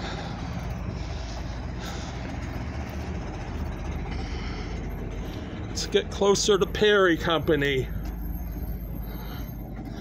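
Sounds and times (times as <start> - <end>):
vehicle engines rumbling: 0.0 - 10.0.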